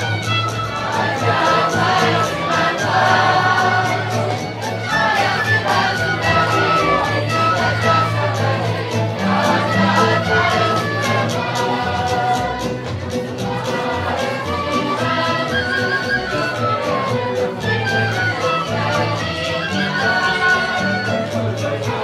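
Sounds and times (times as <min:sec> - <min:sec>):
string band folk dance music: 0:00.0 - 0:22.0
voices singing in unison: 0:00.0 - 0:22.0.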